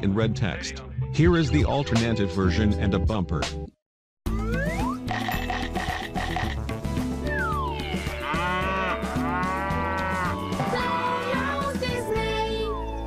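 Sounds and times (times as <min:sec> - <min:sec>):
cartoon glide sound effects: 0:04.3 - 0:06.6, 0:07.2 - 0:11.6
tv jingle music: 0:04.3 - 0:13.0
cartoon cow mooing: 0:07.7 - 0:11.6.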